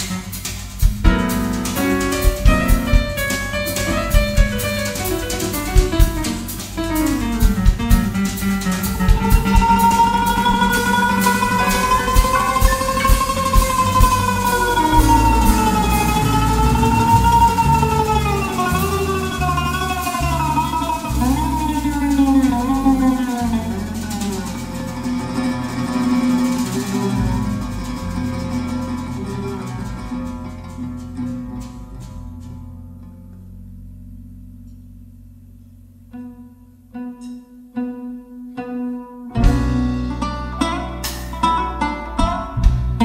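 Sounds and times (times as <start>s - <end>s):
oud playing: 0.0s - 43.0s
plucked double bass: 0.0s - 43.0s
sustained sliding melody: 1.7s - 30.8s.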